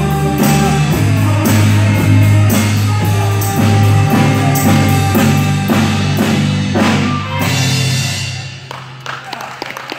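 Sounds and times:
drum and cymbal hits: 0.0s - 8.7s
live jazz band: 0.0s - 9.2s.

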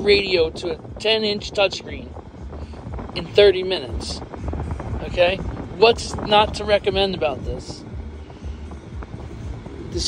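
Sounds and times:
radio music through car speakers: 0.0s - 10.0s
steady low rumble: 0.0s - 10.0s.

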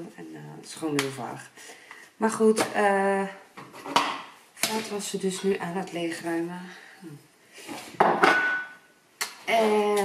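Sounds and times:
crockery bowl clattering: 8.0s - 8.8s.

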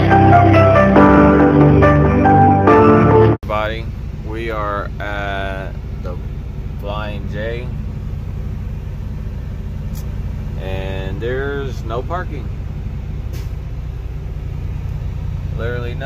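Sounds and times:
diesel engine droning: 0.0s - 16.0s
man speaking: 3.4s - 6.2s, 6.8s - 7.8s, 10.6s - 12.5s.

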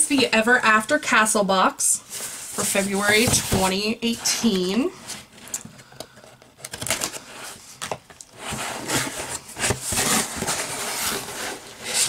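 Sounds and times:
cardboard rubbing and scraping: 2.2s - 5.3s, 8.4s - 12.0s.

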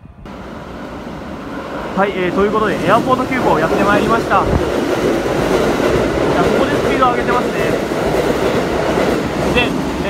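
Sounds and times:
electric train passing fast: 0.0s - 10.0s.

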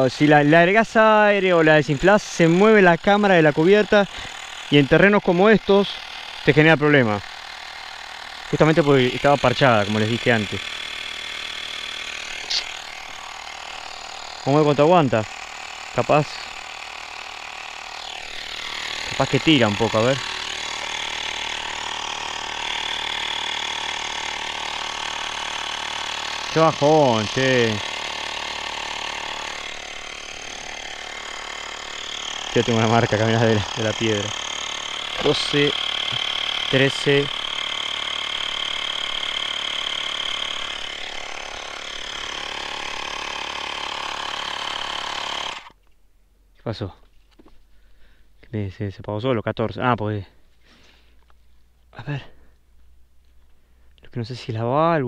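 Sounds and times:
electric tyre inflator running: 0.0s - 45.8s, 50.6s - 51.4s.

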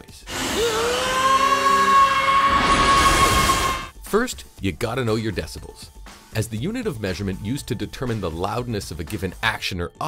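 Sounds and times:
animated character screaming: 0.3s - 3.9s.

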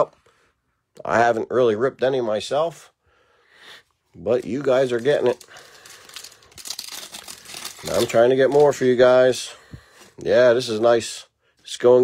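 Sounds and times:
foil wrapper crinkling and tearing: 4.3s - 9.3s.

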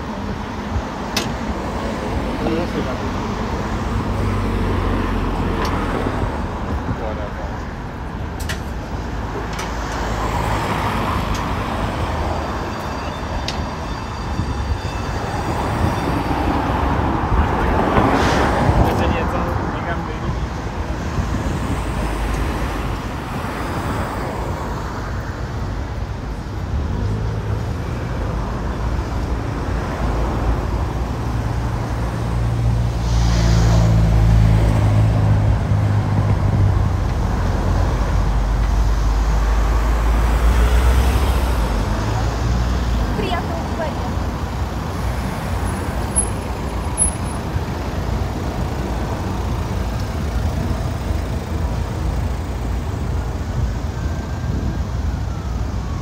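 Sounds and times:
cars driving past: 0.0s - 56.0s
heavy vehicle engine hum: 0.0s - 56.0s.

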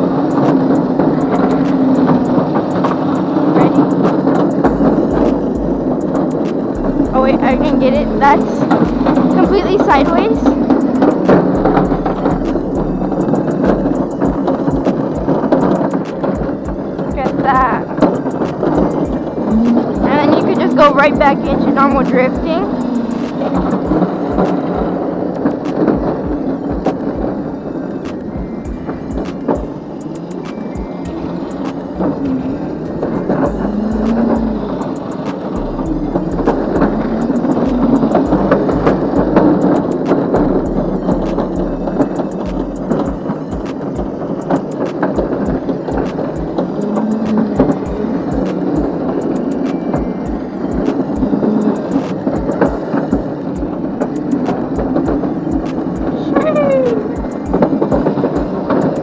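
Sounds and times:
kart wheels clattering: 0.0s - 59.0s
wind buffeting microphone: 0.0s - 59.0s.

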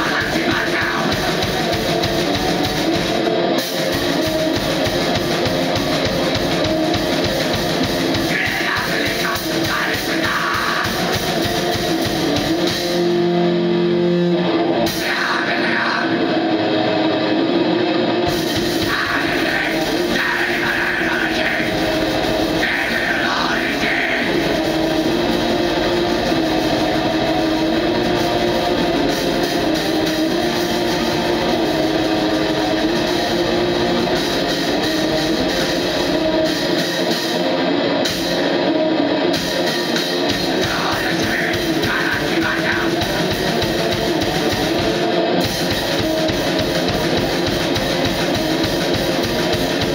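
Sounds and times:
harsh shouted vocals: 0.0s - 2.7s, 8.0s - 11.7s, 14.8s - 16.7s, 18.5s - 25.3s, 40.2s - 45.2s
distorted electric guitar: 0.0s - 49.9s
drum kit: 0.0s - 49.9s.

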